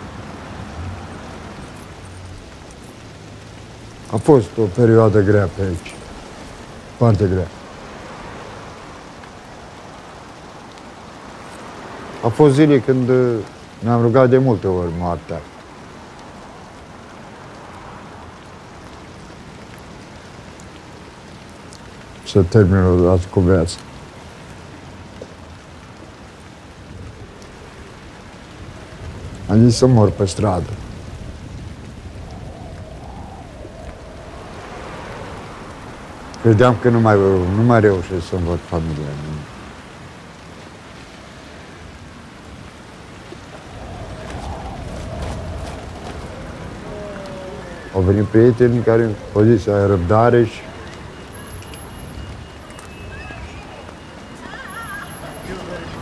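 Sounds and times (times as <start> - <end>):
passing vehicle rumble: 0.0 - 13.8, 30.5 - 38.8, 42.4 - 56.0
rain on street: 0.0 - 56.0.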